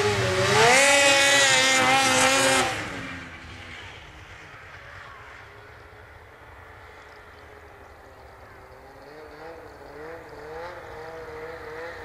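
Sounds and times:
snowmobile engine revving: 0:00.0 - 0:05.8, 0:06.5 - 0:12.0.

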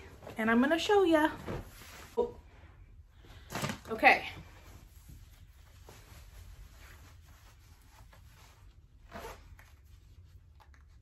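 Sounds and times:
fabric rustling: 0:00.0 - 0:02.5, 0:03.2 - 0:10.6
jeans zipper zipping: 0:09.1 - 0:09.6.

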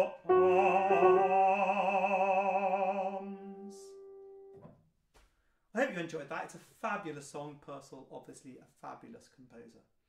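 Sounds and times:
piano chord: 0:00.0 - 0:04.6.

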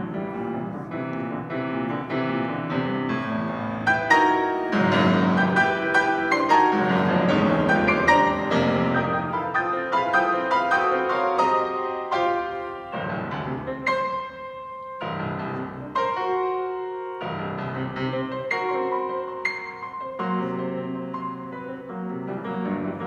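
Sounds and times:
grand piano chords and runs: 0:00.0 - 0:23.0.

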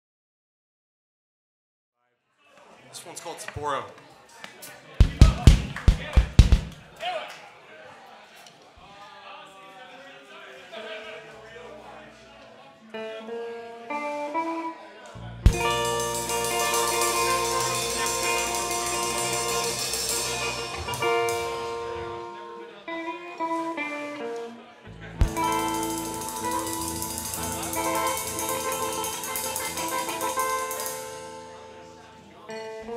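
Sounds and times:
kick drum and tom hits: 0:05.0 - 0:06.8, 0:15.5 - 0:15.9
soft guitar notes: 0:11.4 - 0:32.9.

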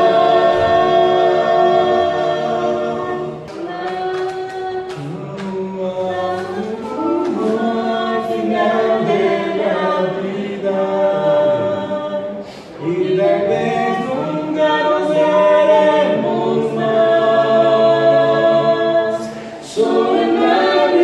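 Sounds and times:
men singing a hymn a cappella: 0:00.0 - 0:21.0.

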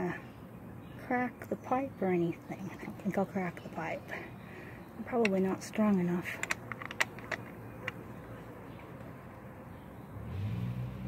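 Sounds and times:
vehicle engine hum: 0:01.5 - 0:11.0
screwdriver clicks: 0:06.3 - 0:08.0.

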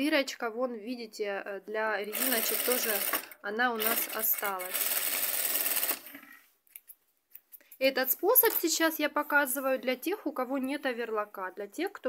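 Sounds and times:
sewing machine running: 0:02.1 - 0:06.3.

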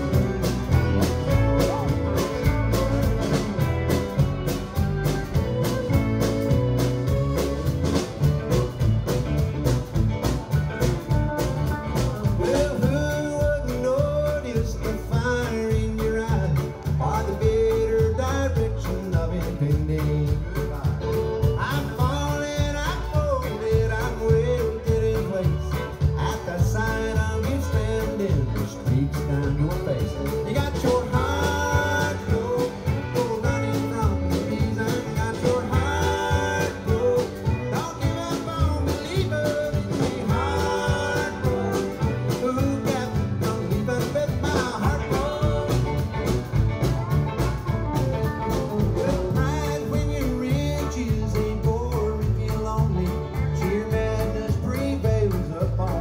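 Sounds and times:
bluegrass band playing live: 0:00.0 - 0:56.0
person singing: 0:10.2 - 0:46.8, 0:48.0 - 0:56.0.

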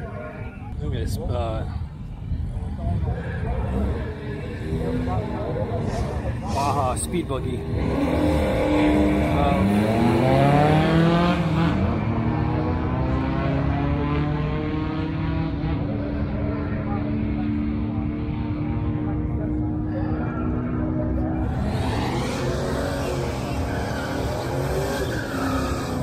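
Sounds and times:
race car engine at full throttle: 0:00.0 - 0:26.0.

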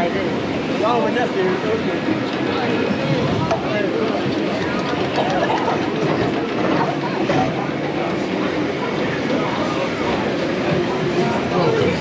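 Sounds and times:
roller coaster train rolling on track: 0:00.0 - 0:12.0.

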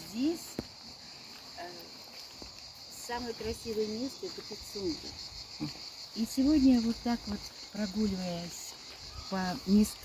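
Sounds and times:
summer insects droning: 0:00.0 - 0:10.0.

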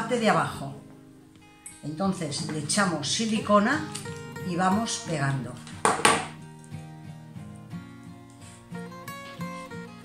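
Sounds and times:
instrumental music: 0:00.0 - 0:10.0
glue gun knocking on tabletop: 0:05.8 - 0:06.3.

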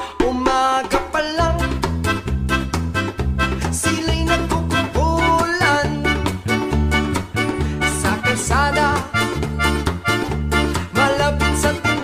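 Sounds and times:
drum kit playing: 0:00.0 - 0:12.0
upbeat song with bass line: 0:00.0 - 0:12.0.

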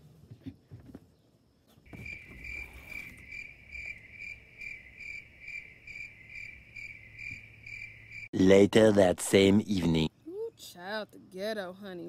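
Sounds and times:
cricket chirping: 0:00.4 - 0:12.0.

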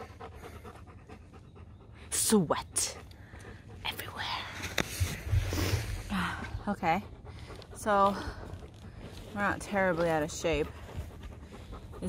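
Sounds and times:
faint quick panting: 0:10.3 - 0:12.0.

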